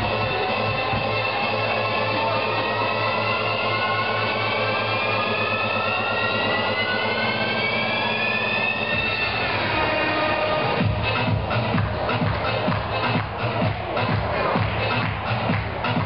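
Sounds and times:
synth riser gliding upward: 3.2 - 10.8.

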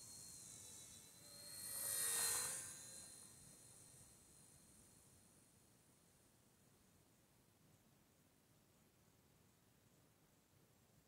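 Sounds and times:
model helicopter whine: 0.0 - 5.3.

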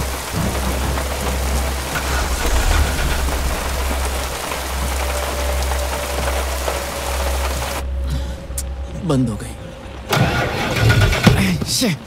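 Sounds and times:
car engine cranking: 10.1 - 11.3.

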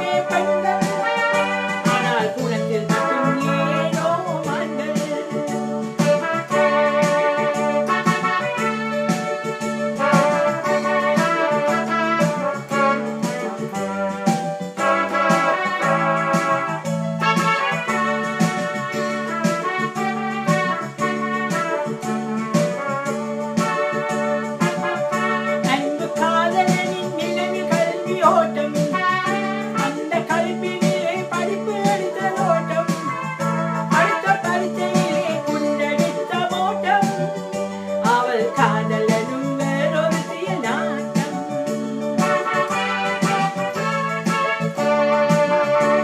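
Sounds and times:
electronic keyboard organ melody: 0.0 - 46.0
repeating bass line and beat: 0.0 - 46.0.

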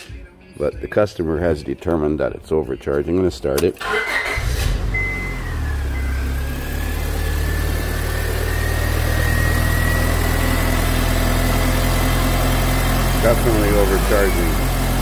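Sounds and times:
car engine idling: 4.1 - 15.0.

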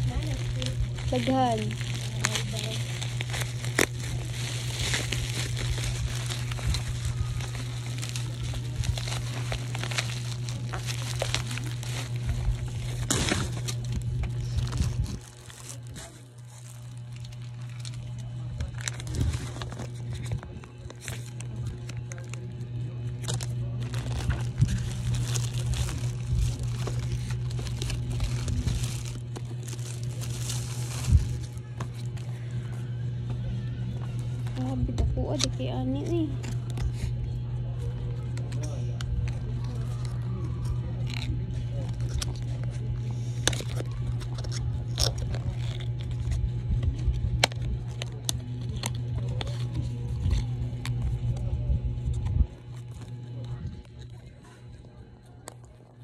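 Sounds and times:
bubble wrap crinkling and tearing: 0.0 - 32.8, 34.0 - 56.0.

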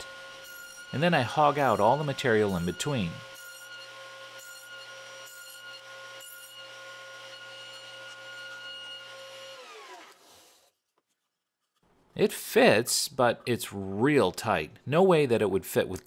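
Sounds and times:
table saw cutting board: 0.0 - 10.8
saw blade spinning down: 7.4 - 10.7.

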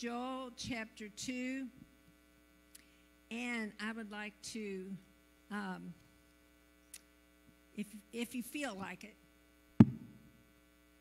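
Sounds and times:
mains hum: 0.0 - 11.0.

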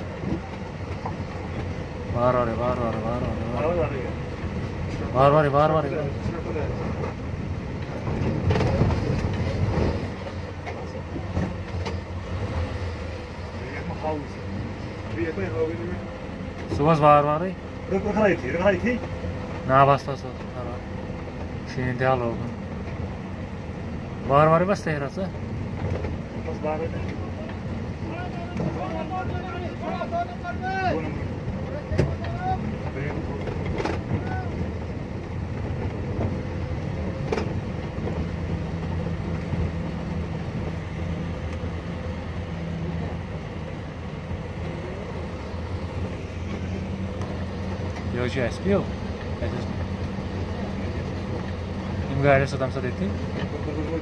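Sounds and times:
vehicle engine running: 0.0 - 54.0.

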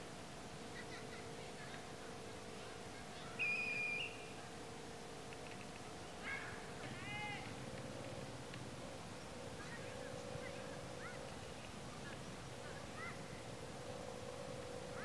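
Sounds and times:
faint steady hum: 0.0 - 15.0
faint high calls: 0.6 - 15.0.

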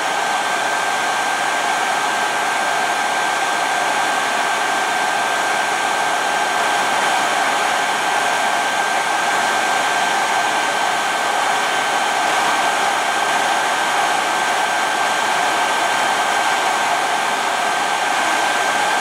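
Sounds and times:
hair dryer blowing air: 0.0 - 19.0.

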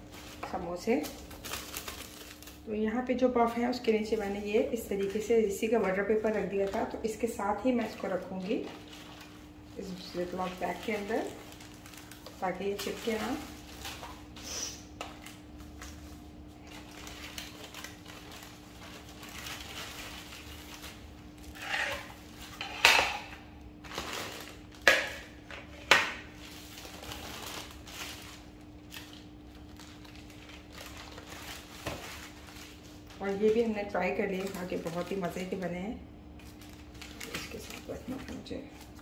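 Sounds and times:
plastic bags crinkling: 0.0 - 23.1, 23.8 - 39.0.

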